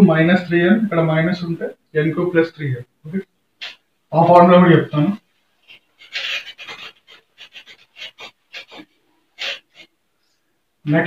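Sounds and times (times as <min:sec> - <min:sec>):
eraser wiping a whiteboard: 0:05.6 - 0:09.9.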